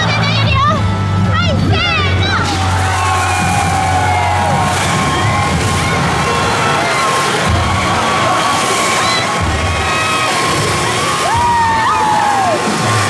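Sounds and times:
crowd cheering and shouting: 0:00.0 - 0:13.0
upbeat parade music: 0:00.0 - 0:13.0.

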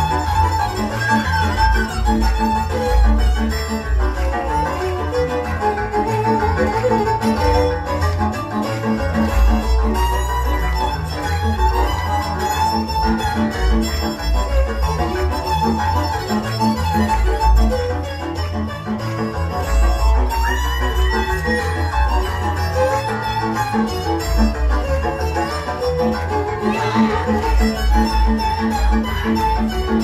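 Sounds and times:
folk dance string band: 0:00.0 - 0:30.0.

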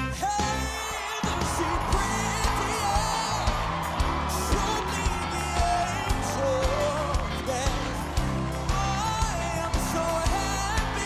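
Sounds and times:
live band music: 0:00.0 - 0:11.0
man singing: 0:00.0 - 0:11.0
steady drum beat: 0:00.4 - 0:11.0.

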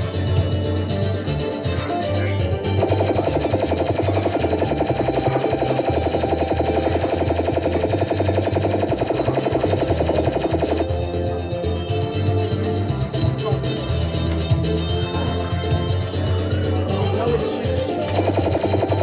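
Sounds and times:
fruit machine electronic music: 0:00.0 - 0:19.0.

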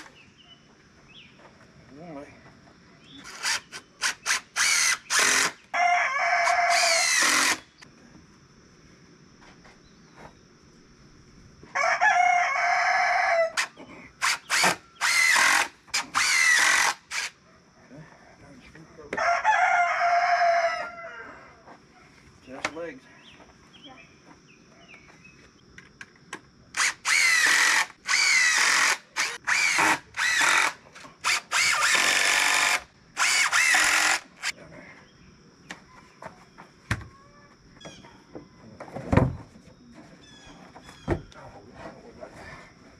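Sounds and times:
cordless drill driving screws: 0:03.2 - 0:05.6, 0:06.7 - 0:07.7, 0:13.6 - 0:17.4, 0:26.8 - 0:34.5
rooster crowing: 0:05.7 - 0:07.3, 0:11.7 - 0:13.7, 0:19.1 - 0:21.7.

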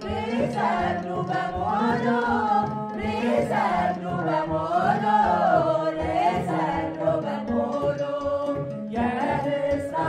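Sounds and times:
mixed choir singing a hymn: 0:00.0 - 0:10.0.

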